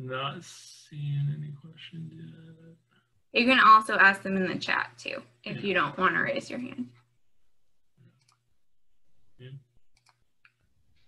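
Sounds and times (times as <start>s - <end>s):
person saying yeah quietly: 0.0s - 2.4s.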